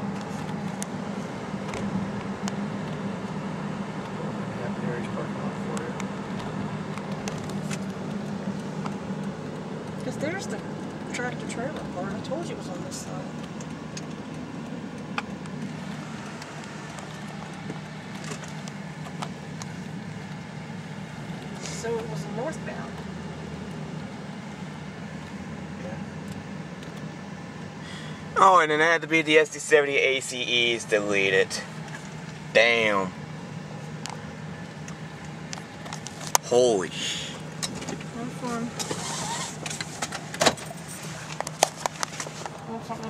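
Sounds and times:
car cabin hum: 0.0 - 43.0.

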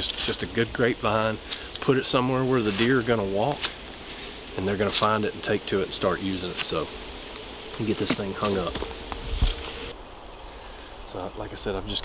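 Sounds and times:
faint woodland background: 0.0 - 12.0.

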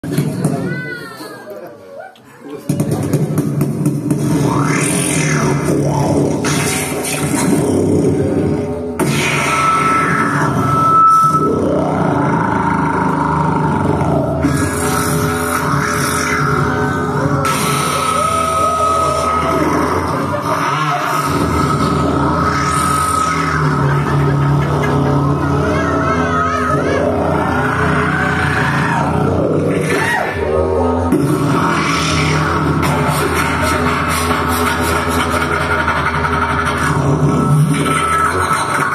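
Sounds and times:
drums: 0.0 - 1.2, 2.6 - 30.4, 31.0 - 38.9
didgeridoo drone: 2.6 - 38.9
high sweep: 3.0 - 38.9.

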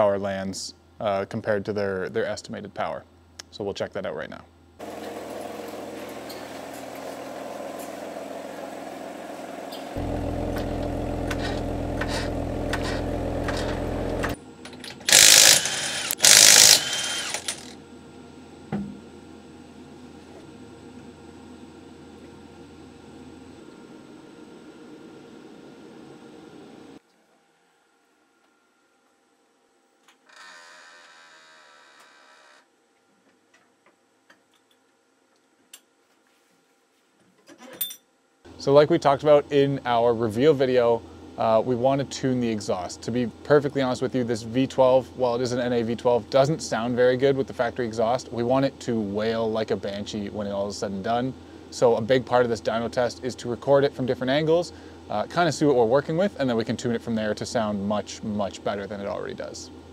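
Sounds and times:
drum fan humming: 4.8 - 14.4, 15.1 - 17.7
tool hissing bursts: 15.1 - 17.7
mechanical ratcheting: 15.1 - 17.8.

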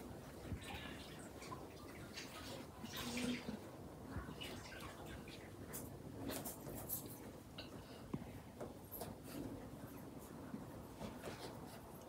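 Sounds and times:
soft rustling: 5.6 - 12.0.

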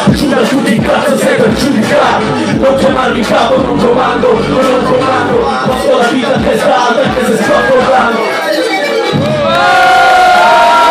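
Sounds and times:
concert crowd cheering and shouting: 7.0 - 10.9.

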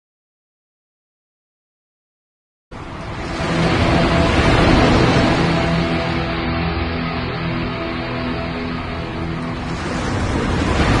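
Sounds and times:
ocean wave surging: 2.7 - 11.0.

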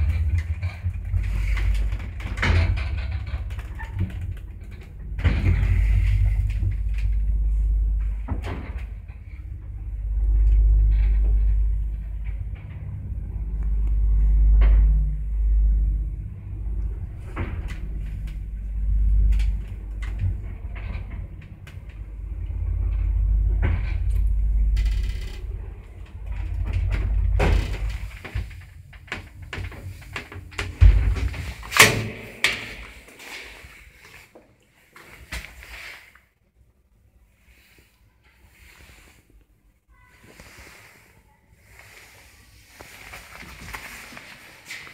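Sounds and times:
elevator car rumbling in shaft: 0.0 - 34.1
sharp clicks and knocks: 26.0 - 33.2.

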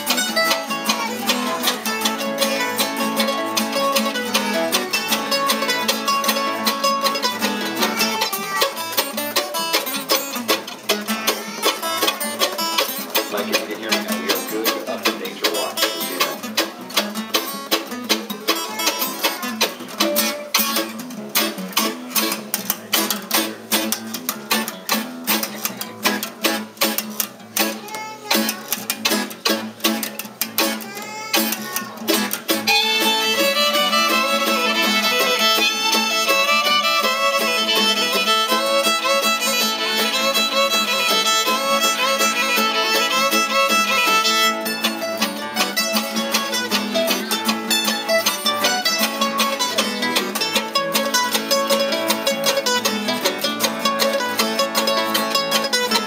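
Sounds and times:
fiddle bowed melody: 0.0 - 10.4, 32.6 - 56.0
mandolin and guitar picking: 0.0 - 56.0.

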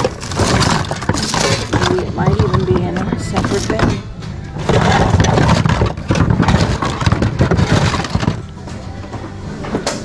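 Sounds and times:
household items clattering: 0.0 - 10.0.

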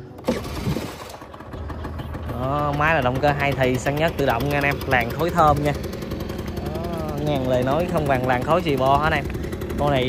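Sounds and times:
two-stroke engine starting and idling: 0.0 - 10.0.

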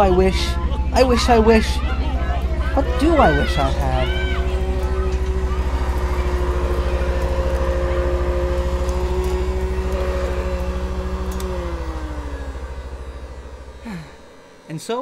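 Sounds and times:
machine motor whirring: 0.0 - 15.0.

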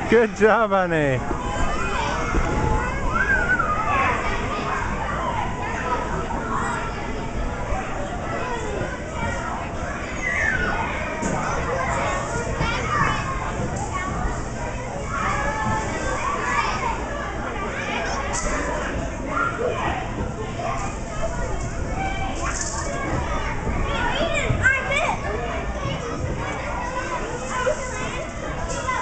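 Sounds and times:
children shouting and chattering: 0.0 - 29.0
many children playing: 0.0 - 29.0.

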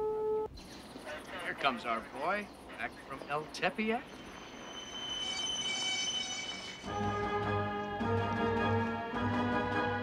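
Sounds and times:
brakes squealing: 1.0 - 7.0.

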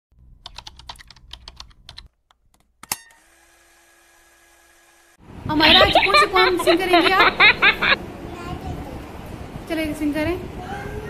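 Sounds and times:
keyboard key clicks: 0.4 - 2.7
faint steady hum: 5.2 - 10.0.

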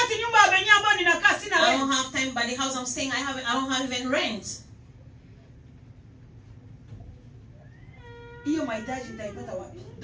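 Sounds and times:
woman speaking into a microphone: 0.0 - 4.8, 8.3 - 10.0
low room hum: 0.0 - 10.0.

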